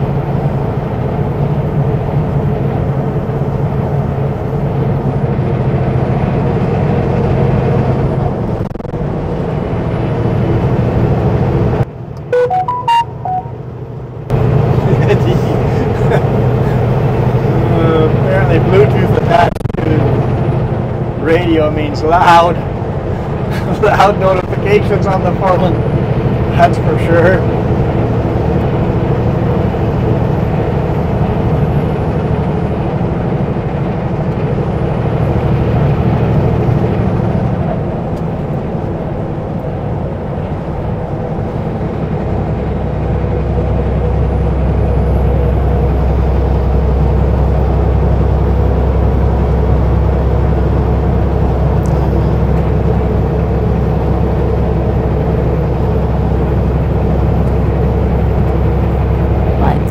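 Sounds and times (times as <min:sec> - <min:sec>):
truck diesel engine running: 0:00.0 - 0:59.9.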